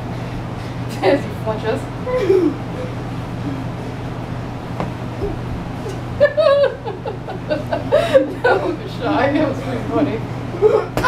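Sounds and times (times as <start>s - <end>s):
people chuckling and laughing: 6.1s - 9.0s.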